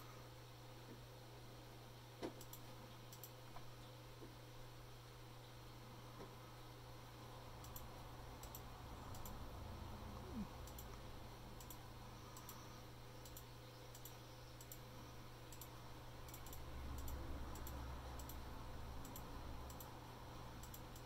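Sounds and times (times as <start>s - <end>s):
steady low hum: 0.0s - 21.0s
computer mouse clicks: 2.2s - 3.6s, 7.6s - 9.4s, 10.2s - 21.0s.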